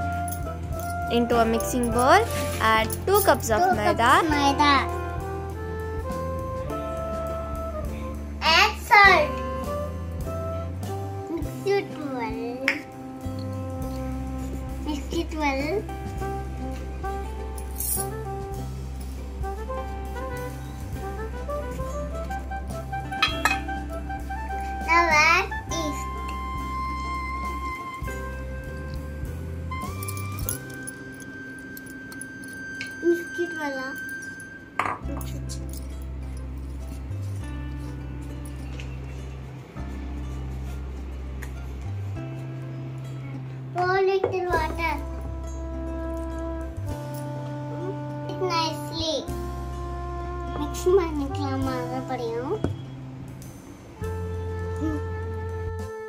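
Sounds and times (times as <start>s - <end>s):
music of low sustained chords: 0.0s - 56.0s
utensil clinking against bowl: 23.2s - 23.8s.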